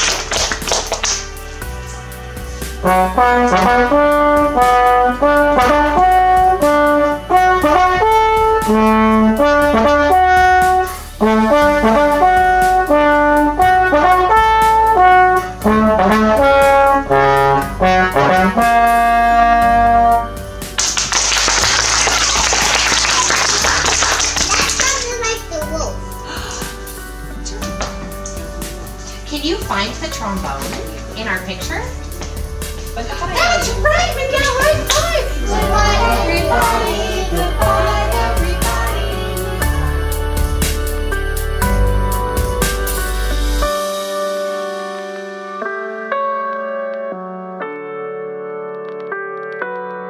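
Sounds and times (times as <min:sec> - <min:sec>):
applause: 0:00.0 - 0:01.3, 0:20.8 - 0:25.2
solo slide trombone: 0:02.8 - 0:20.4.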